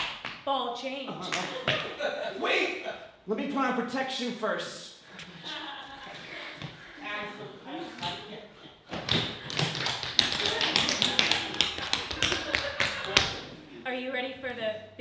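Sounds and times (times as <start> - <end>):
tap shoes on wooden stage: 8.9 - 13.4.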